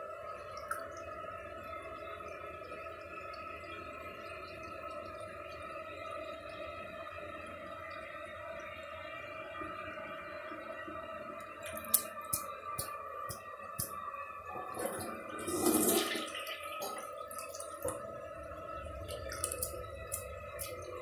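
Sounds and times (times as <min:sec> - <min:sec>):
water running into toilet bowl: 0:11.6 - 0:21.0.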